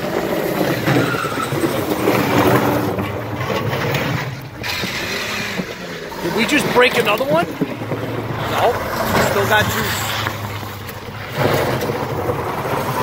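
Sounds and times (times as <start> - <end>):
car engine revving hard: 4.6 - 13.0.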